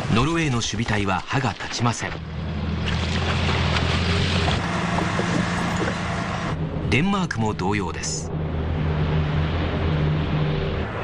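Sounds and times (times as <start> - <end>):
tank engine low drone: 2.1 - 11.0.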